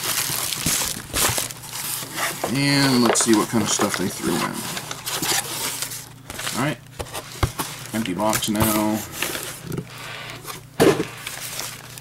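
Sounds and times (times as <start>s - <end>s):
paper and bubble wrap rustling: 0.0s - 12.0s.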